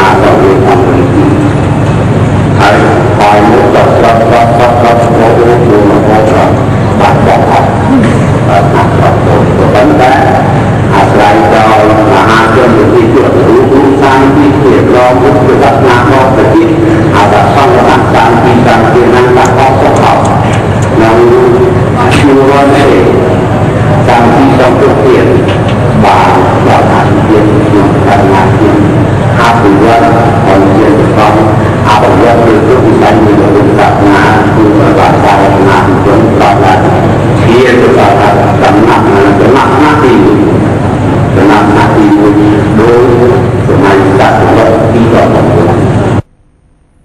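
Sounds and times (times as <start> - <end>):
person chanting melodically: 0.0 - 1.7, 2.5 - 46.3
man speaking into microphone: 0.0 - 46.2
low hum: 0.0 - 47.0.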